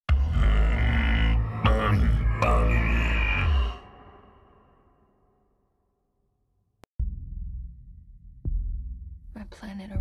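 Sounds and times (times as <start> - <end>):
deep electronically lowered voice: 0.1 - 5.4.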